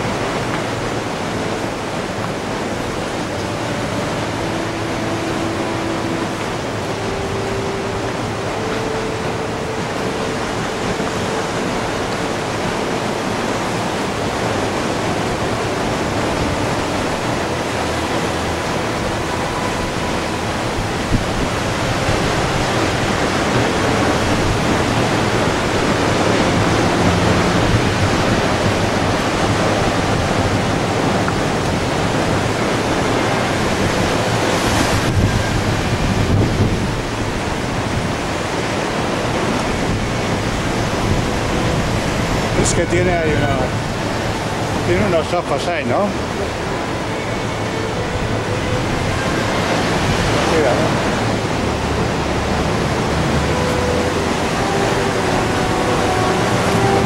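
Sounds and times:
surf breaking on rocks: 0.0s - 57.0s
wind on microphone: 0.0s - 57.0s.

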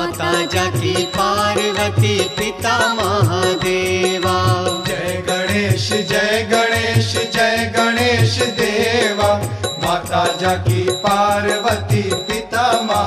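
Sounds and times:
steady drum beat: 0.0s - 13.0s
voices singing devotional song: 0.0s - 13.0s.

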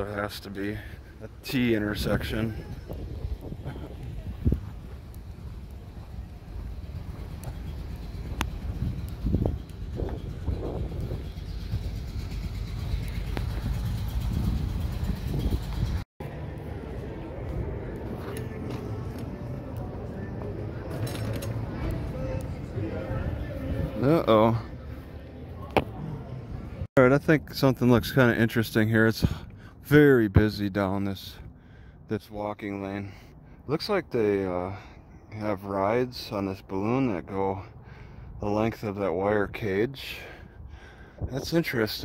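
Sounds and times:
passers-by voices: 0.0s - 14.6s, 16.2s - 30.0s
low rumble of car traffic: 0.0s - 42.0s.

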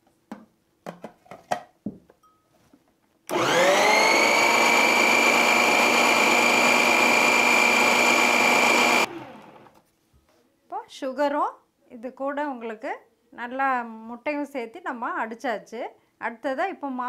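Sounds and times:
mixer grinder motor whine: 3.3s - 9.8s.

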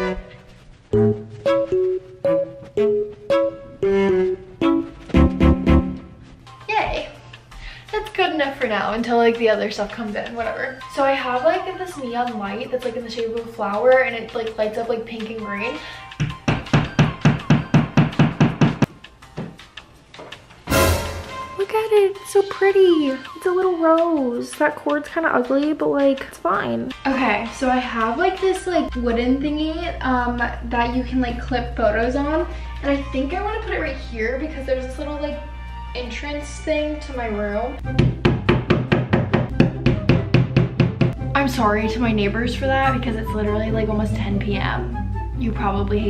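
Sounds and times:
background music: 0.0s - 46.0s
hammer tapping a nail: 38.0s - 41.2s.

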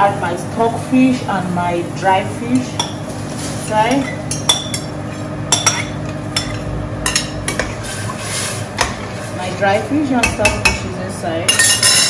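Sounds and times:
metal spoon clinking on pot: 11.5s - 12.0s.

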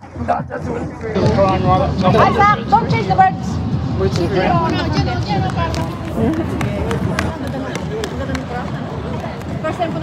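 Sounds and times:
outdoor crowd noise: 0.0s - 10.0s
running footsteps on boardwalk: 4.1s - 10.0s.

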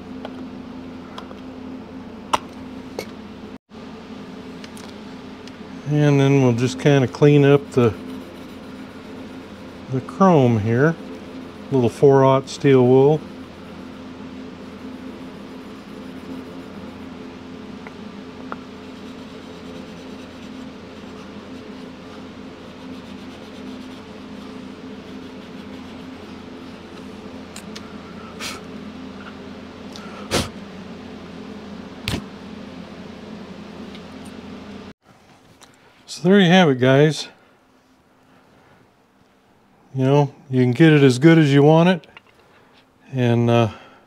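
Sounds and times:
low hum: 0.0s - 35.0s
steel wool rubbing on metal: 6.4s - 17.2s, 18.6s - 27.1s.

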